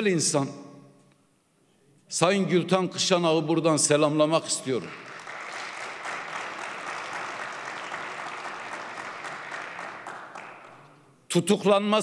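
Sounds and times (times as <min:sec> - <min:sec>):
audience applause: 0:04.9 - 0:11.0.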